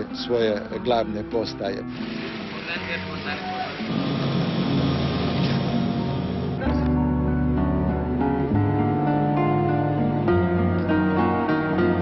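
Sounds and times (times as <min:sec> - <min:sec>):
steady mechanical drone: 0:02.1 - 0:06.6.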